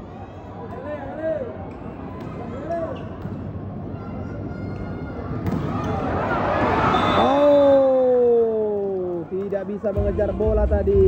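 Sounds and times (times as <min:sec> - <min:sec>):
arena crowd: 0:00.0 - 0:11.0
crowd shouts: 0:03.9 - 0:09.0.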